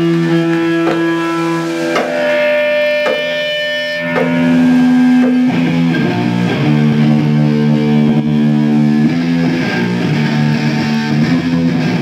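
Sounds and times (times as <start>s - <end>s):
electric guitar chords: 0.0s - 12.0s
drum hits: 0.8s - 1.2s, 1.9s - 2.4s, 3.0s - 5.7s.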